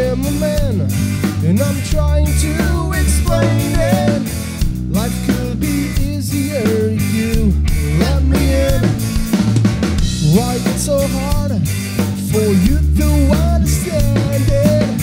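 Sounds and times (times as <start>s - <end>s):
drum kit: 0.0s - 15.0s
punk rock band playing: 0.0s - 15.0s.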